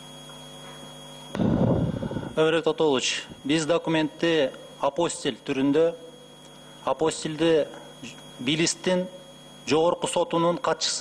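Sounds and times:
electrical hum with whine: 0.0s - 11.0s.

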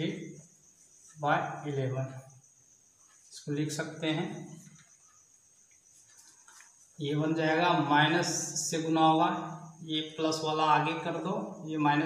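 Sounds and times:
man speaking: 0.0s - 0.3s, 1.2s - 2.2s, 3.4s - 4.6s
crickets chirring: 0.0s - 12.0s.

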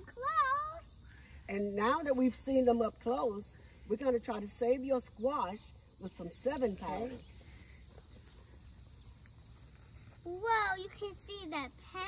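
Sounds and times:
high insect drone: 0.0s - 12.0s.

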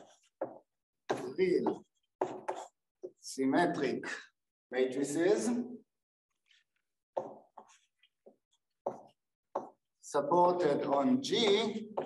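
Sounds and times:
chalk tapping on blackboard: 0.0s - 3.2s, 6.7s - 10.0s.

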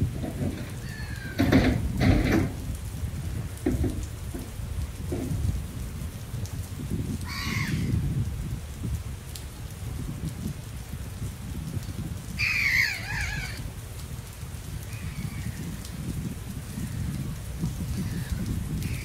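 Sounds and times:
wind rumble: 0.0s - 19.0s
harsh falling bird call: 0.8s - 1.5s, 12.4s - 13.6s.

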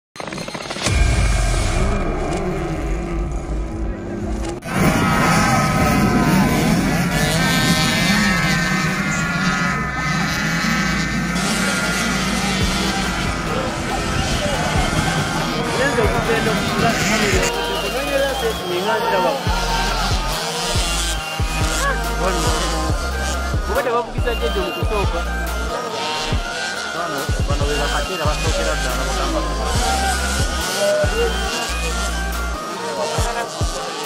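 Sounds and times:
motocross bike engines revving: 0.2s - 34.0s
music: 0.8s - 4.7s, 11.7s - 34.0s
heavy intro sound: 0.8s - 10.1s.

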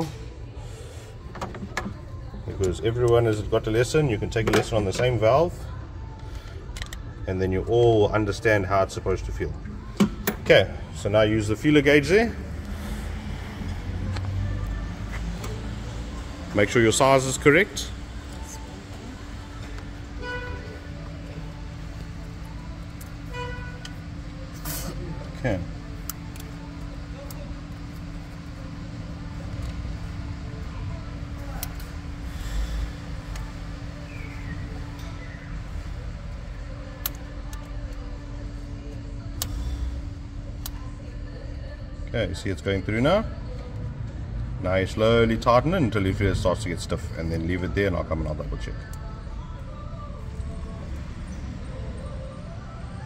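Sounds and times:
low background hum: 0.0s - 53.0s.

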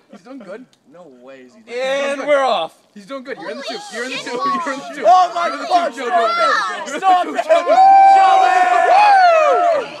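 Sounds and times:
group shouting and cheering: 3.4s - 10.0s.

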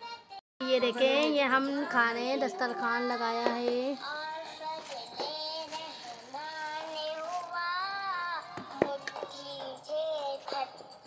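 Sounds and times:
high-pitched singing voice: 0.0s - 11.0s.

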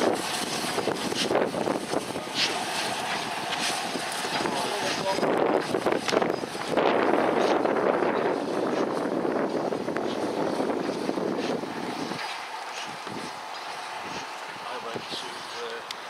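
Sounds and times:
steam locomotive chuffing: 0.0s - 16.0s.

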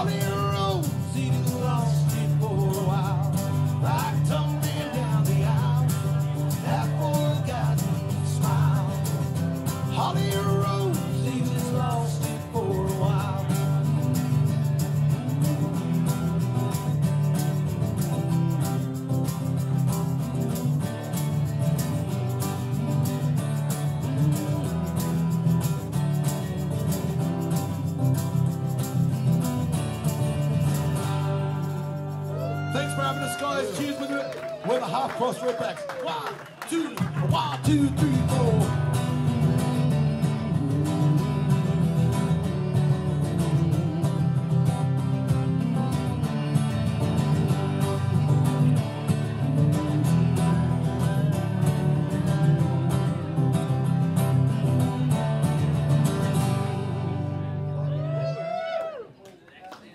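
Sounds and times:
man singing: 0.0s - 14.4s, 36.6s - 45.8s
acoustic guitars strummed: 0.0s - 34.1s, 36.9s - 58.1s.

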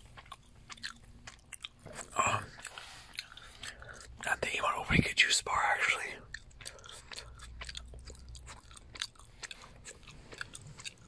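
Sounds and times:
gum chewing with wet smacks: 0.0s - 11.0s.

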